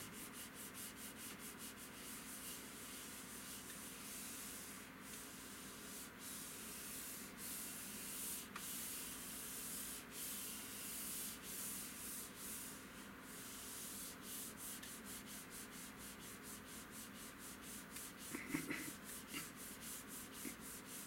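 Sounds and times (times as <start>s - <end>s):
palm rubbing a monitor screen: 0.1s - 12.8s, 13.4s - 21.0s.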